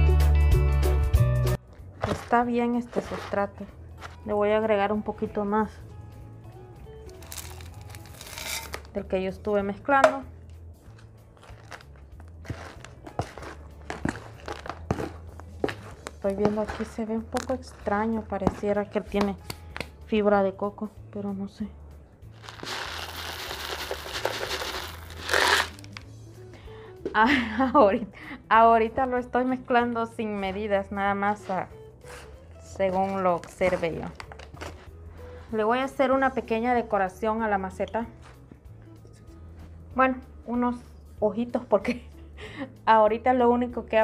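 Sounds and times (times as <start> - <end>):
faint background music: 0.0 - 44.0
plastic bag crinkling: 7.2 - 9.0, 11.4 - 17.6, 22.4 - 26.0
soil poured into plastic tub: 11.4 - 16.9, 22.4 - 26.0
gravel pouring into a tub: 22.4 - 25.8.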